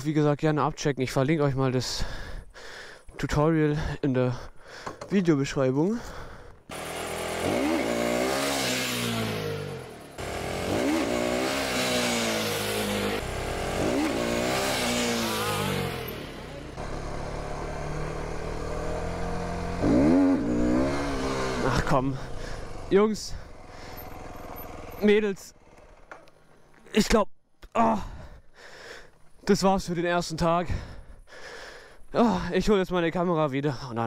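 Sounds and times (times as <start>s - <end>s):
motorcycle engine revving: 6.7s - 26.8s.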